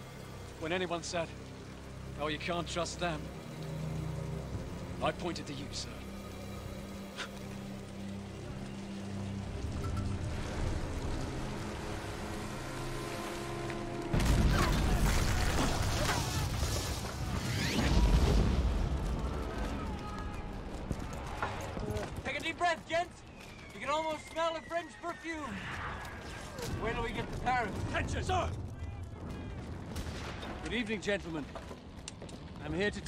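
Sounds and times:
dramatic film score: 0.0 - 33.0
shell explosion with deep rumble: 29.1 - 30.7.

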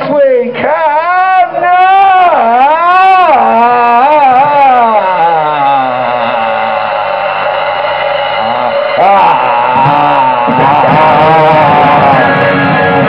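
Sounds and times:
man singing a long note: 8.4 - 13.0.

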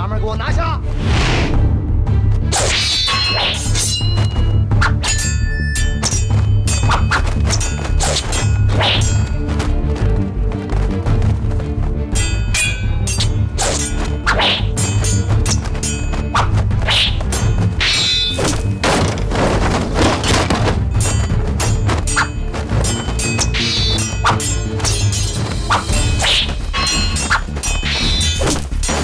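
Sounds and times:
dramatic music with pulsing beat: 0.0 - 29.0
fight thuds and whacks: 18.4 - 23.5.

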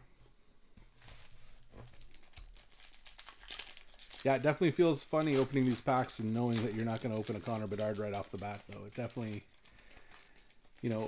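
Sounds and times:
foil wrapper crinkling: 1.1 - 11.0.

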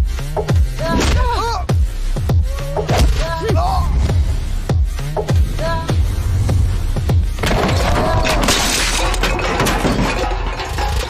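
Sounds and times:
background music: 0.0 - 11.0
metal pots crashing: 7.4 - 11.0.

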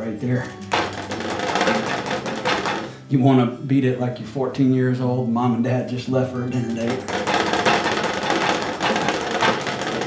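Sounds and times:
paintbrush beaten against hard surface: 0.0 - 3.0, 6.5 - 10.0.

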